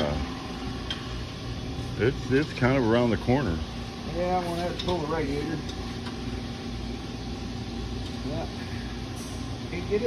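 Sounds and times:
low mechanical hum: 0:00.0 - 0:10.0.

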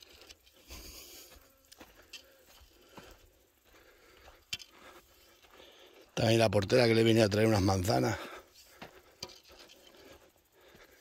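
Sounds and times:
faint footsteps on dirt path: 0:00.0 - 0:11.0.

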